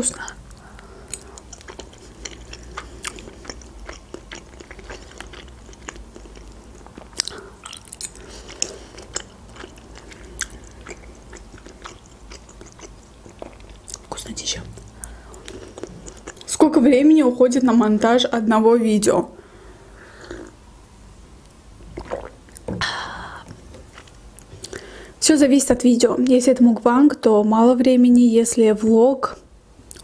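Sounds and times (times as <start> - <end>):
wet chewing mouth clicks: 1.2 - 14.2, 14.8 - 16.5.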